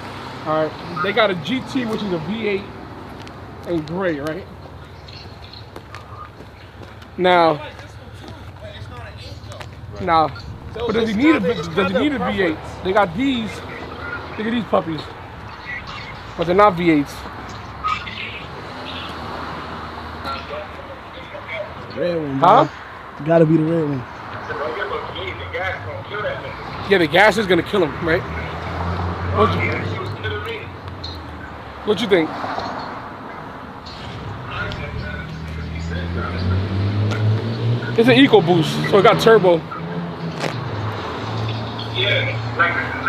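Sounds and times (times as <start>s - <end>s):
faint men's voices: 0.0s - 43.0s
road traffic rumble: 0.0s - 43.0s
vehicle engine humming: 0.0s - 43.0s.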